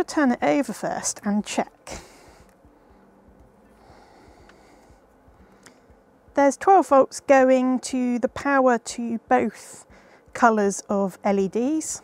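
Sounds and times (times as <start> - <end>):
soft breath: 1.9 - 6.0, 9.9 - 10.3.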